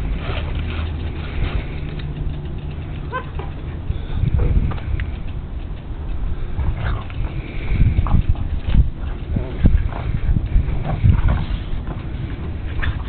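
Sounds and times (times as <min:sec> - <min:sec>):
low steady rumble: 0:00.0 - 0:13.0
puppy yipping: 0:03.1 - 0:03.5.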